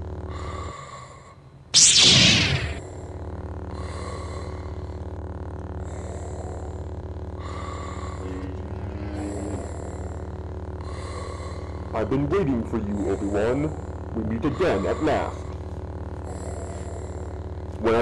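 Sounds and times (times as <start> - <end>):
lightsaber electric hum: 0.0 - 18.0
mechanical respirator breathing: 0.0 - 18.0.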